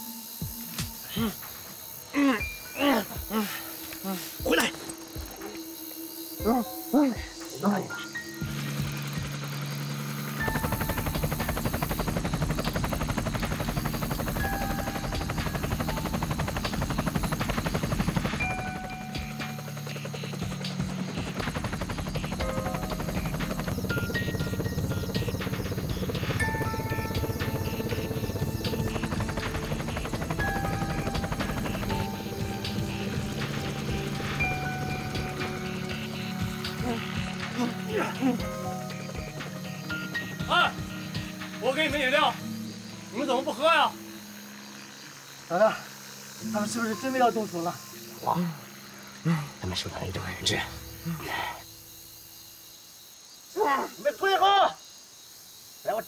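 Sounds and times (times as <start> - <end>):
tense film score: 0.0 - 54.8
helicopter droning: 0.2 - 52.1
muffled vocal cries: 2.1 - 4.9, 36.8 - 38.6.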